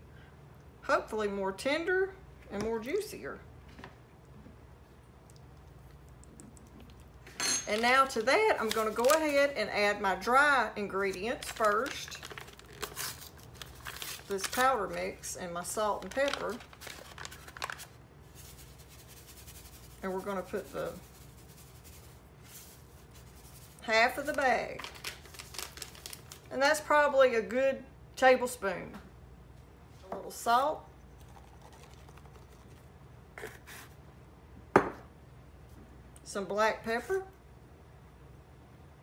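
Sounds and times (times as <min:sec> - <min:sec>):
paper packet crinkling: 0:07.7 - 0:09.6, 0:10.9 - 0:26.5, 0:31.2 - 0:32.9
powder rustling out of packet: 0:07.7 - 0:09.6, 0:10.9 - 0:26.5, 0:31.2 - 0:32.9.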